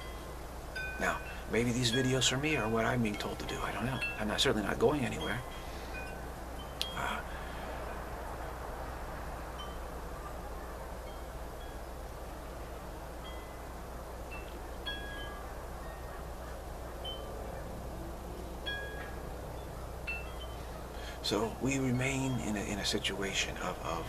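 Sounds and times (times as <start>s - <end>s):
wind chimes ringing: 0.0s - 7.3s, 9.5s - 10.1s, 11.0s - 12.1s, 12.9s - 16.2s, 17.0s - 24.0s
background hiss and low hum: 0.0s - 24.0s.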